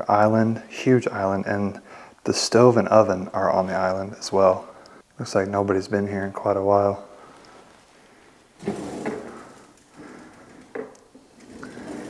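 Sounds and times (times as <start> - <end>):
wooden drawer sliding open: 8.6 - 12.0.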